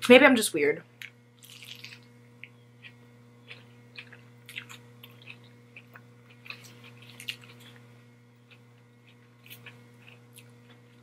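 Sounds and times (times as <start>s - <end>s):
faint low hum: 0.0s - 11.0s
biting and chewing: 1.4s - 2.1s, 2.8s - 11.0s.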